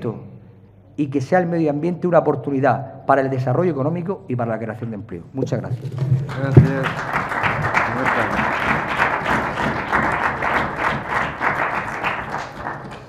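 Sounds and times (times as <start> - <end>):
crowd clapping: 5.8 - 13.0.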